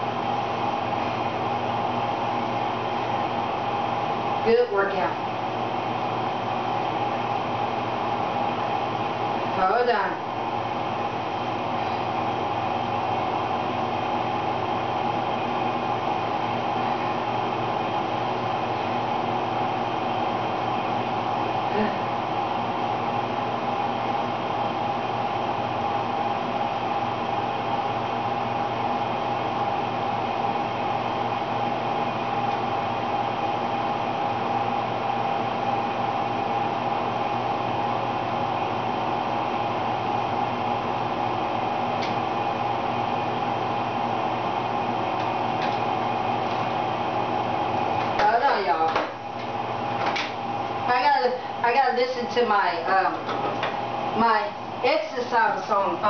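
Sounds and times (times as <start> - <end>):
machine whirring hum: 0.0 - 56.0.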